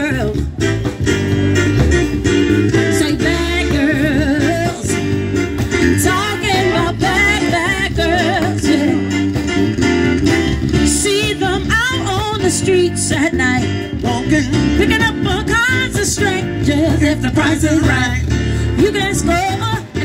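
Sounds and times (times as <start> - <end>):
bass notes: 0.0 - 20.0
beat: 0.0 - 20.0
guitar: 0.0 - 20.0
live band playing: 0.0 - 20.0.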